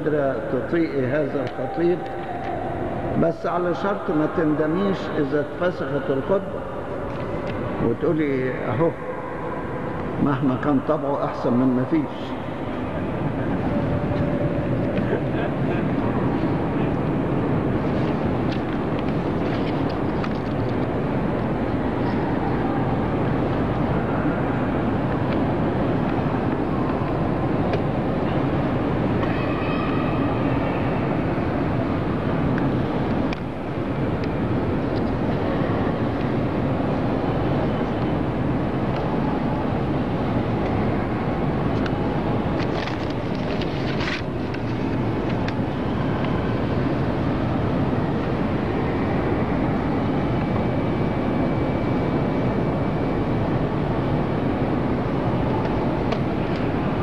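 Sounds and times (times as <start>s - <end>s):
large hall background noise: 0.0s - 57.0s.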